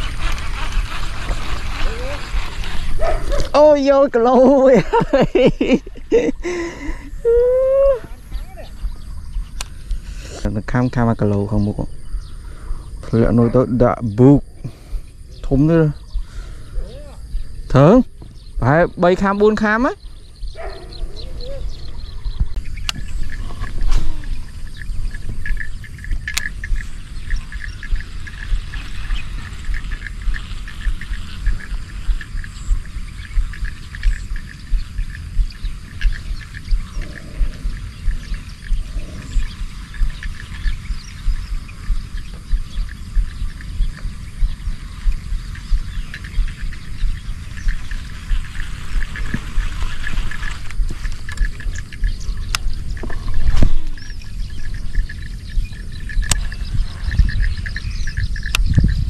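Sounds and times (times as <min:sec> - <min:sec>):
high chirping of small animals: 0:00.0 - 0:59.0
sharp clicks: 0:25.1 - 0:58.9.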